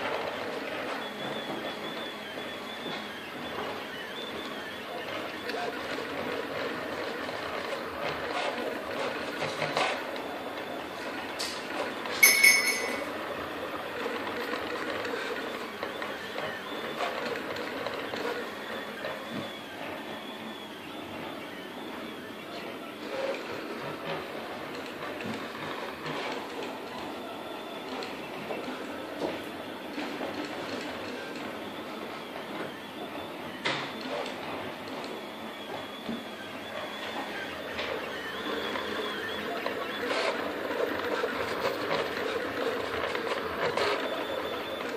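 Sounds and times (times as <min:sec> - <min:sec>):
stepper motors whirring: 0:00.0 - 0:44.9
high ringing clink: 0:12.2 - 0:13.2.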